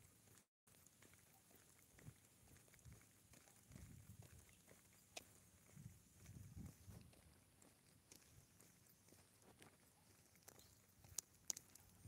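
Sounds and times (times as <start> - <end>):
footsteps on concrete: 0.0 - 12.0.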